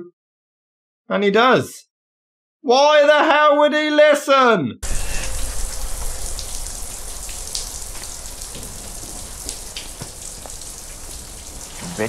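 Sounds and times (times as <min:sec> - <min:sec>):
low hum: 0:04.8 - 0:11.8
shower spray running: 0:04.8 - 0:12.0.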